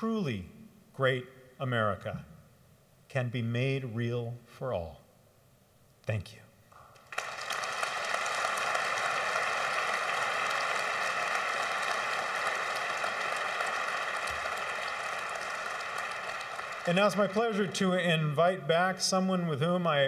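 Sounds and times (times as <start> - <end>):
audience applauding: 7.0 - 18.3.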